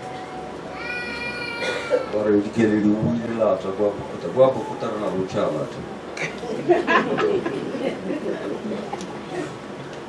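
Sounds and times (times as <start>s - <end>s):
child crying: 0.7s - 2.2s.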